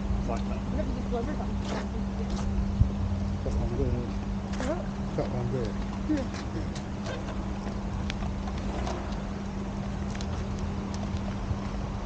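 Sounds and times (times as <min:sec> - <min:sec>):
low hum: 0:00.0 - 0:12.0
low rumble: 0:00.0 - 0:12.0
footsteps on paving stones: 0:00.3 - 0:12.0.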